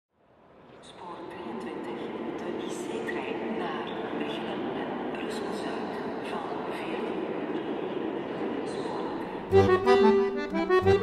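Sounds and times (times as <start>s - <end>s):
echoing distant voices and bustle: 0.2s - 11.0s.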